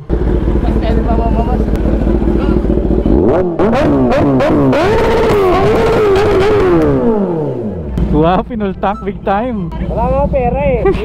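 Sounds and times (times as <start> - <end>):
motorcycle accelerating through gears: 0.0 - 8.4
motorcycle engine idling: 0.0 - 11.0.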